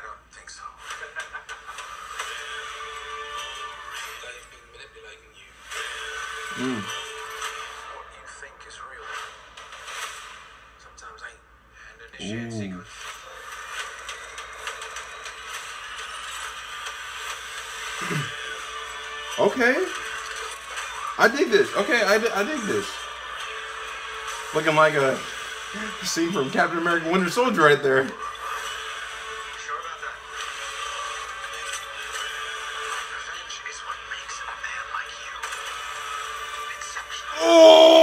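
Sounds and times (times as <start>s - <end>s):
film soundtrack from tv speaker: 0.0s - 38.0s.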